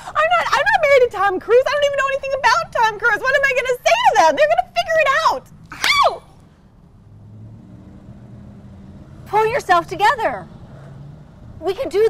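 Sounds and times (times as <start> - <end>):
car engine humming: 0.0 - 12.0
street background noise: 0.0 - 12.0.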